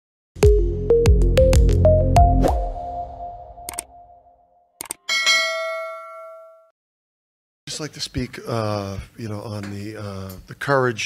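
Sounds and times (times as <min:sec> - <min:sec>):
electronic intro music: 0:00.4 - 0:04.6
short clicks: 0:03.7 - 0:03.9, 0:04.8 - 0:05.0
bright bell-like ding: 0:05.1 - 0:06.7.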